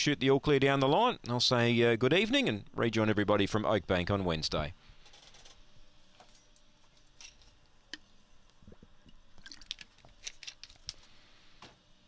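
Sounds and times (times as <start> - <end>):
low hiss: 0.0 - 12.0
faint clicks and handling noises: 5.1 - 11.8.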